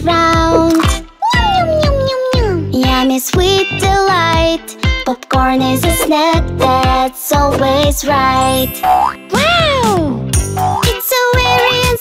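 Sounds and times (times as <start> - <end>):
children's song music: 0.0 - 12.0
cartoon boing sound effect: 8.8 - 9.2.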